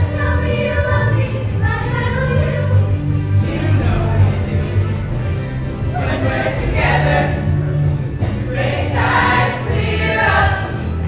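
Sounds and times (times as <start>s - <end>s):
young voices singing: 0.0s - 5.0s, 5.6s - 11.0s
band accompaniment: 2.3s - 10.9s.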